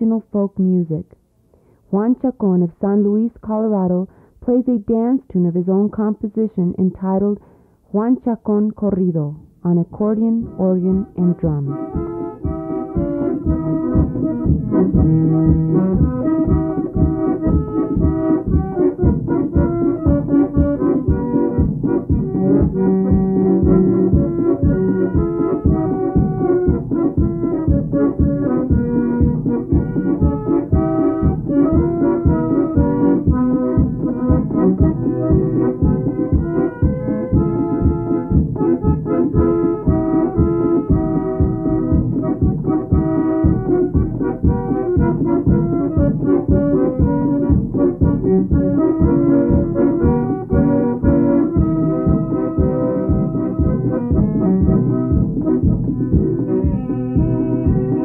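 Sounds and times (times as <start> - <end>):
piano accordion melody: 9.9 - 58.0
organ: 10.4 - 58.0
drum beat: 11.8 - 58.0.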